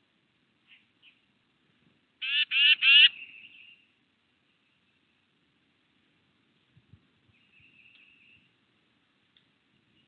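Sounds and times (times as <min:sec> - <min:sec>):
bird harsh calls: 0:02.2 - 0:03.9.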